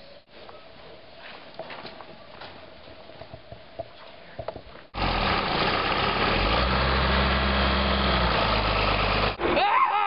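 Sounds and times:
tractor diesel engine running: 5.0 - 9.4.

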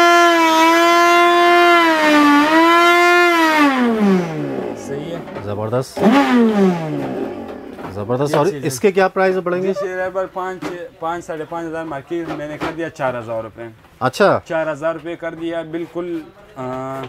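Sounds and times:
blender motor whining: 0.0 - 4.9, 6.0 - 7.8.

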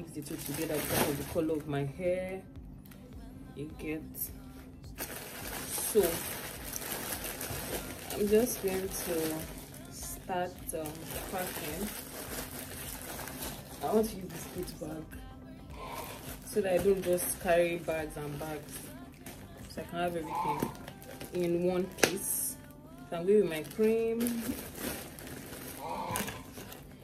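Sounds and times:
fabric bag rustling: 0.2 - 1.7, 5.0 - 15.0, 15.8 - 27.0
plastic packaging crinkling: 0.2 - 1.7, 5.0 - 15.1, 15.8 - 27.0.

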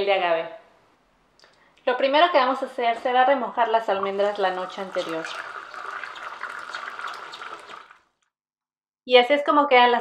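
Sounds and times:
tap water splashing into bowl: 4.0 - 8.0.

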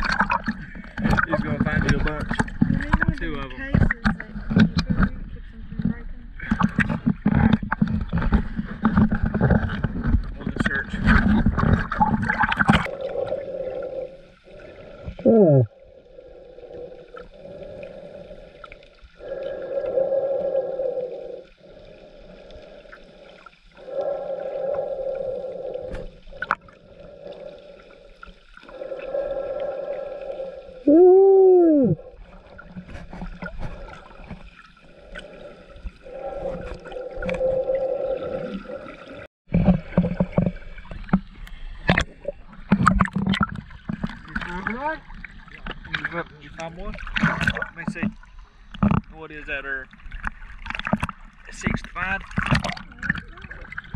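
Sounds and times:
muffled underwater noise: 0.0 - 28.0, 28.6 - 34.0, 51.4 - 53.9.

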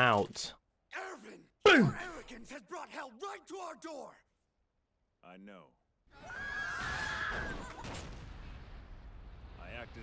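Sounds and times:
explosion rumble: 7.9 - 10.0.

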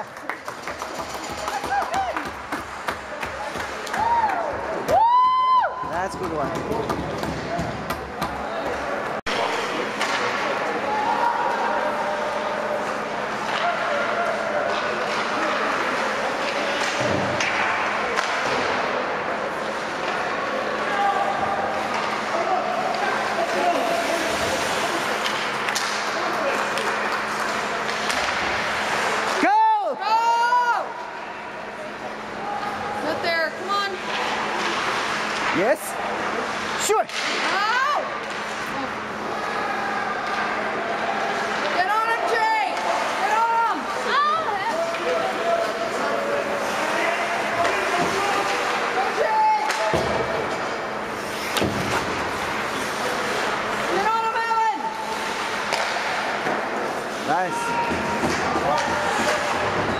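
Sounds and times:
hockey sticks and puck knocking: 0.6 - 5.0, 5.8 - 8.9, 25.1 - 29.4, 55.2 - 59.9.

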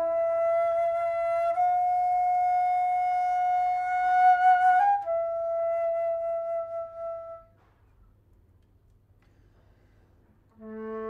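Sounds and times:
flute holding a long note: 0.0 - 7.6, 10.5 - 11.0.

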